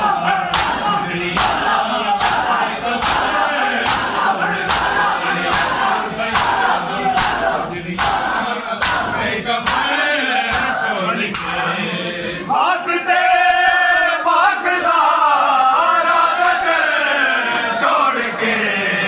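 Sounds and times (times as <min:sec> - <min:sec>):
men chanting: 0:00.0 - 0:19.0
palms slapping chests: 0:00.5 - 0:11.6.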